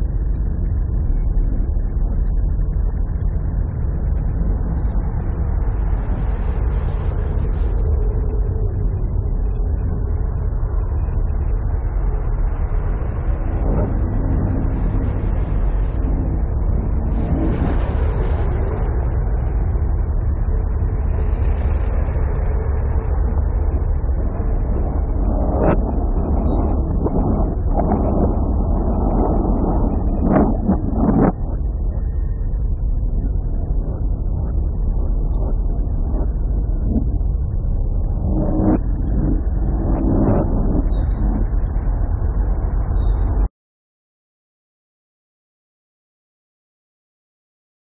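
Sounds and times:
harsh noise ambient music: 0.0s - 43.5s.

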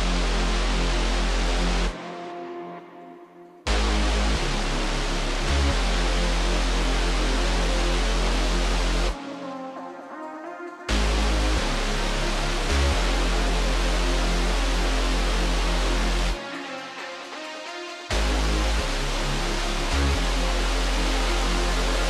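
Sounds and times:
electronic dance music: 0.0s - 22.0s.

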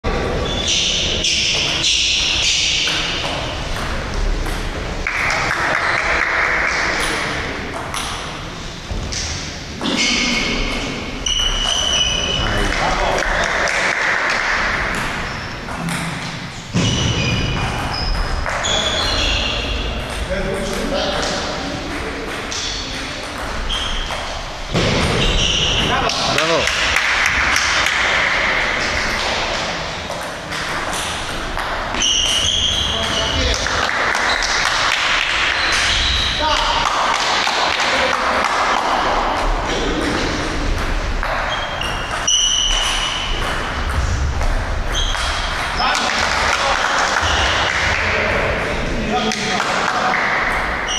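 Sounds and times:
voices in a hall: 0.0s - 50.9s.

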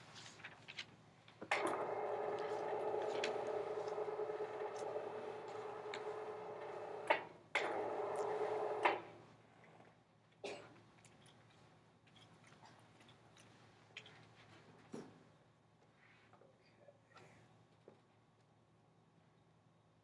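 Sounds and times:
motor humming: 1.5s - 9.0s
motor stopping click: 1.5s - 9.1s.

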